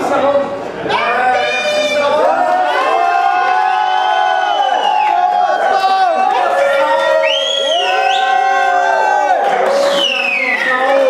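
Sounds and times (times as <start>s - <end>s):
crowd cheering and shouting: 0.8s - 11.0s
high whoop: 2.2s - 11.0s.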